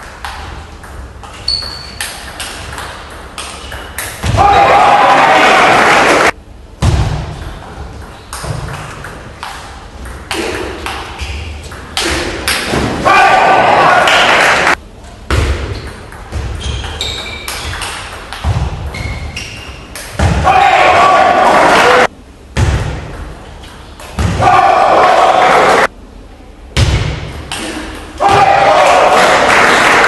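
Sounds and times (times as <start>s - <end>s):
shoe squeaks: 1.4s - 2.0s, 16.6s - 17.8s, 18.9s - 19.9s
voices shouting and cheering: 4.3s - 6.3s, 12.9s - 14.8s, 20.4s - 22.1s, 24.3s - 25.9s, 28.2s - 30.0s.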